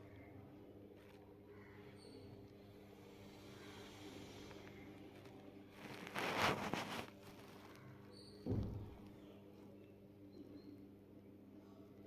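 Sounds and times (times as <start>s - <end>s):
low thump: 8.4s - 9.1s.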